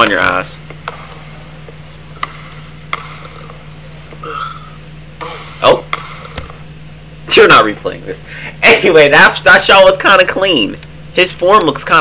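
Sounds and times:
steady low hum: 0.0 - 12.0
basketball bouncing on court floor: 0.8 - 1.2, 2.2 - 3.6.

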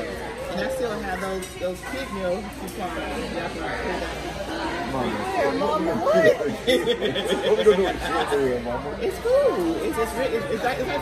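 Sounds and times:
background chatter: 0.0 - 11.0
people talking: 0.0 - 11.0.

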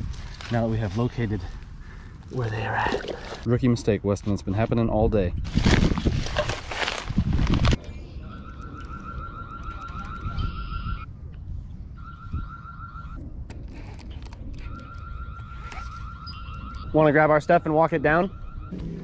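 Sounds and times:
rustling and handling noise: 5.5 - 7.8.

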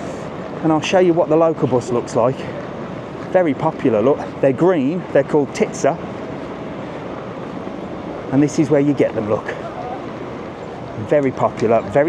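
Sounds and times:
outdoor traffic noise: 0.0 - 12.0.

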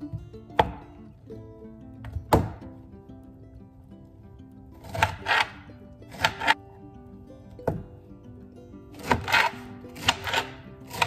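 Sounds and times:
background music with sustained notes: 0.0 - 11.0
knife striking glass cutting board: 4.9 - 6.6.

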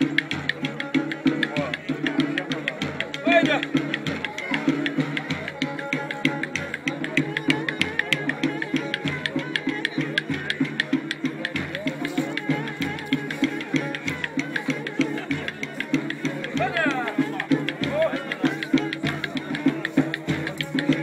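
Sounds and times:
bowed fiddle melody: 0.0 - 21.0
large drum beating dance rhythm: 0.0 - 21.0.

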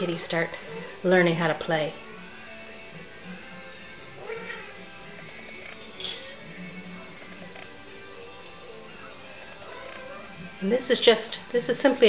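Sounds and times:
quiet background music: 0.0 - 12.0
kitten mewing: 4.2 - 4.8.

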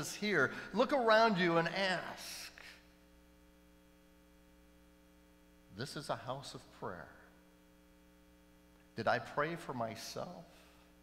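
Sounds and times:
man's voice: 0.0 - 2.7
electrical mains hum: 0.0 - 11.0.

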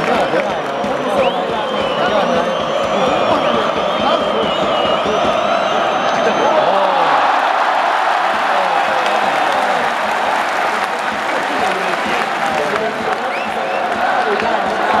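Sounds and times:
stadium crowd cheering and clapping: 0.0 - 15.0.

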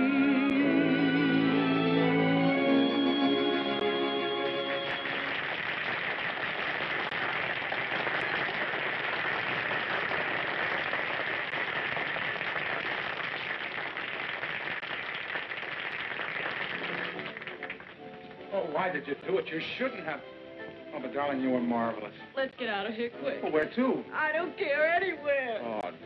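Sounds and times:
audience applauding: 3.9 - 18.5.

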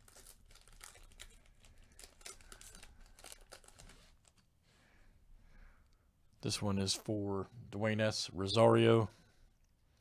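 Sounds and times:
foil wrapper crinkling: 0.0 - 4.4.

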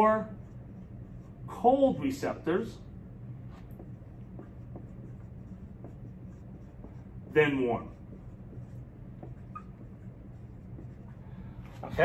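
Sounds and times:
low room hum: 0.0 - 12.0
marker squeaking on whiteboard: 3.5 - 11.2.

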